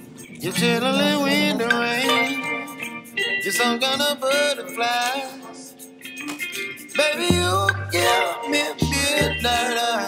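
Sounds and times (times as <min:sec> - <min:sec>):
song with sung vocals: 0:00.0 - 0:10.0
deep bass: 0:08.8 - 0:09.6.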